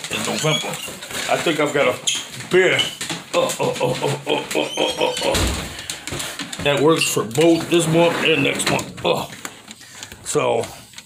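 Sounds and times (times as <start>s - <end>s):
man talking: 0.0s - 5.7s, 6.6s - 9.4s, 10.2s - 10.8s.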